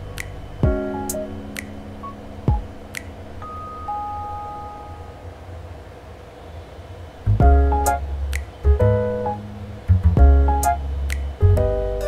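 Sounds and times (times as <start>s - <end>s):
low steady hum: 0.0s - 12.0s
soft chime notes: 3.4s - 5.2s.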